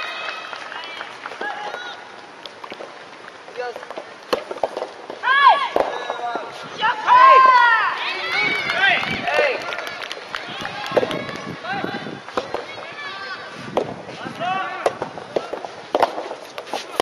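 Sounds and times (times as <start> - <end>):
racket striking rubber ball: 3.7 - 6.2, 12.3 - 12.8, 14.8 - 17.0.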